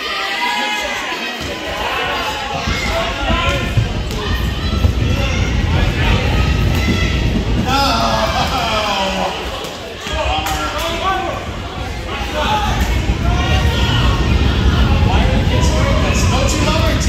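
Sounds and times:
spectators talking and calling out: 0.0s - 17.0s.

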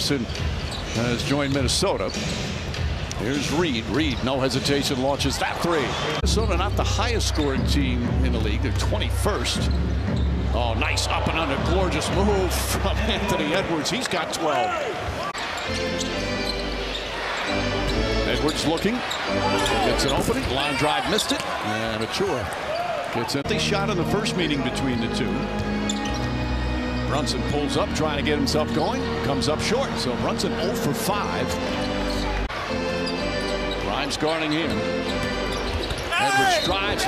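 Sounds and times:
crowd noise: 0.0s - 37.0s.

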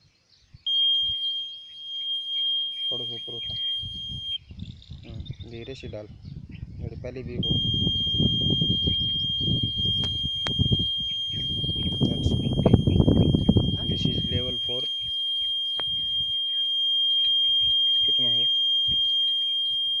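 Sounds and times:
steady high-pitched electronic buzzer: 0.7s - 4.4s, 7.4s - 20.0s
voices talking: 0.7s - 20.0s.

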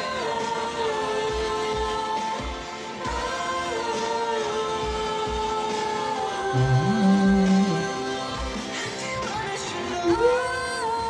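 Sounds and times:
man singing a slow song: 4.8s - 11.0s.

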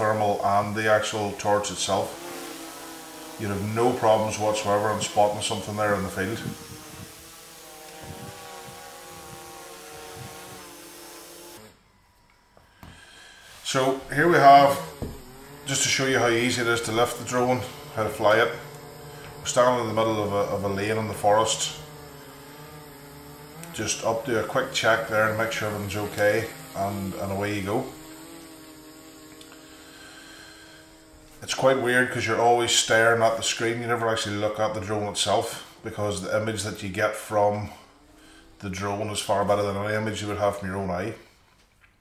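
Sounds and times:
drone propellers humming: 0.0s - 41.0s.

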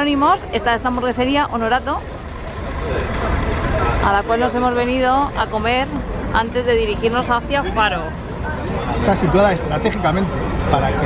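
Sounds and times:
street traffic rumble: 0.0s - 11.0s
vehicle passing: 0.0s - 11.0s.

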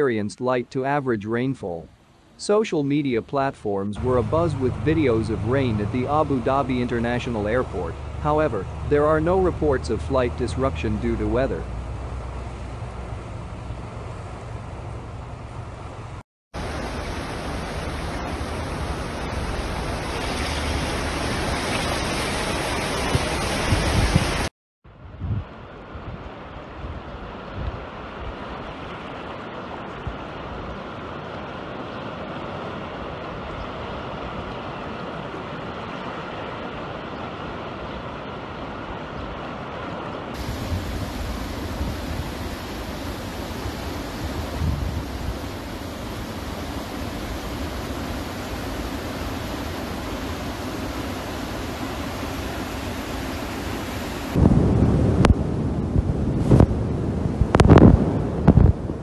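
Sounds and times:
floodwater rushing: 4.0s - 24.5s, 26.6s - 55.0s
wind buffeting microphone: 23.0s - 26.3s, 40.4s - 53.1s, 54.2s - 59.0s.

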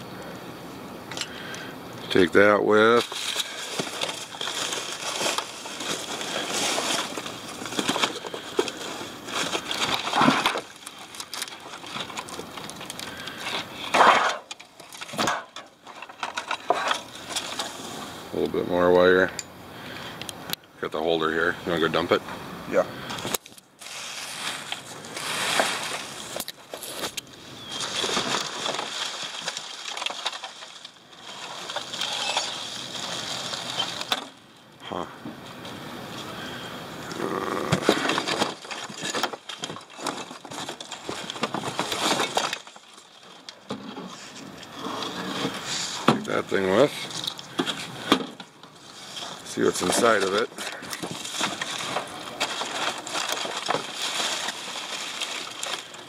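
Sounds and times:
plastic rustling and crinkling: 2.1s - 19.0s, 23.1s - 34.5s, 35.5s - 56.0s
scrap parts knocking: 3.0s - 17.8s, 37.7s - 42.9s.

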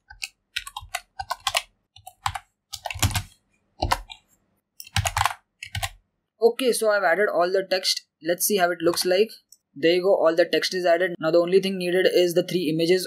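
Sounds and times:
keyboard keys clicking: 0.0s - 4.2s, 4.8s - 6.0s.

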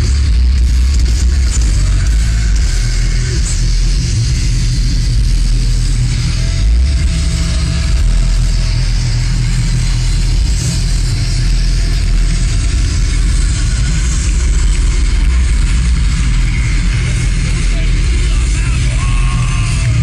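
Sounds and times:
live heavy metal band: 0.0s - 20.0s.

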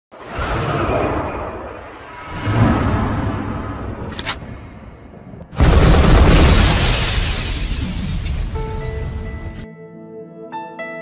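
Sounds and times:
whoosh with deep rumble: 0.2s - 5.6s.

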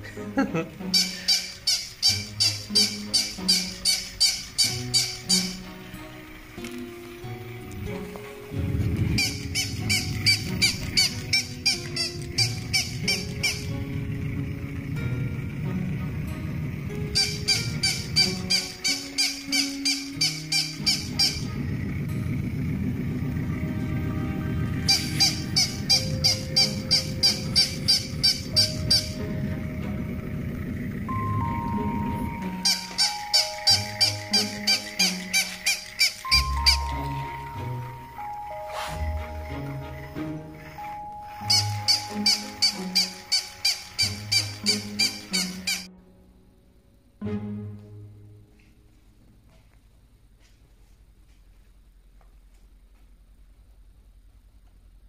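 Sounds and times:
background music: 0.0s - 49.2s
toy dog electronic yaps: 0.9s - 5.6s, 9.2s - 13.7s, 17.2s - 21.5s, 24.9s - 29.2s, 32.4s - 37.1s, 41.4s - 45.9s.

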